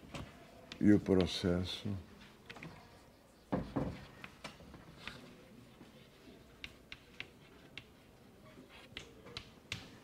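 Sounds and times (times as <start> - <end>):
chalk tapping on chalkboard: 0.7 - 1.4, 3.3 - 5.2, 6.6 - 8.0.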